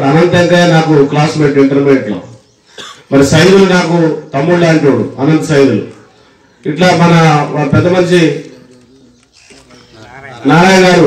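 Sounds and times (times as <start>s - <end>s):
man speaking into a microphone: 0.0s - 9.2s, 9.8s - 11.0s.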